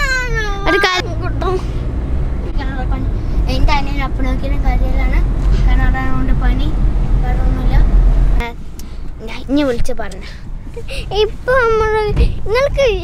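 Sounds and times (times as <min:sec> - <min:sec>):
car rumble inside cabin: 0:00.0 - 0:13.0.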